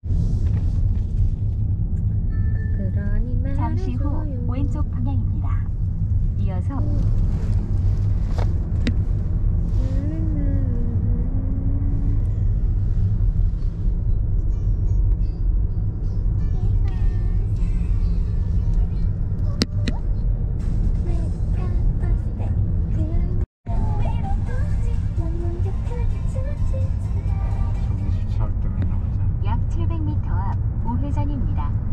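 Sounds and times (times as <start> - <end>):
road and engine rumble: 0.0 - 31.9.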